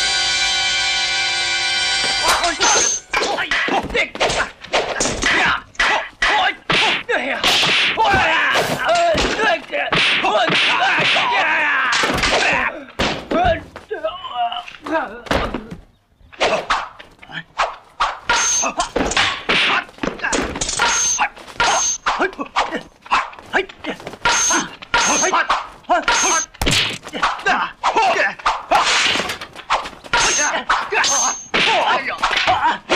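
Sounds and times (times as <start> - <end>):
thwacking blows: 2.2 - 13.9, 14.6 - 32.9
fighters shouting: 2.2 - 14.6, 18.5 - 29.0, 30.1 - 32.9
swishes of swung poles: 17.6 - 32.9.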